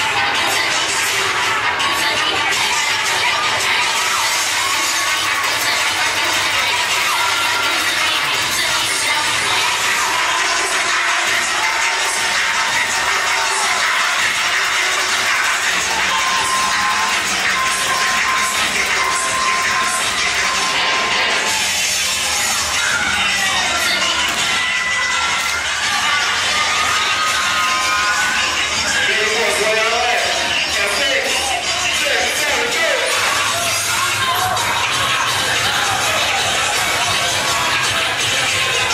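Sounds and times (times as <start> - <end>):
crowd cheering and shouting: 0.0 - 38.9
loud dance music: 0.0 - 38.9.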